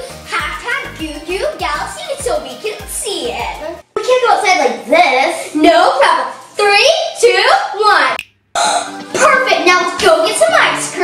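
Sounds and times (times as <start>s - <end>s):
children's voices: 0.0s - 11.0s.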